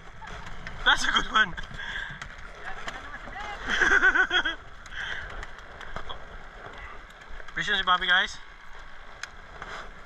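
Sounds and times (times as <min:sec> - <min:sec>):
choppy water around boat: 0:00.0 - 0:10.0.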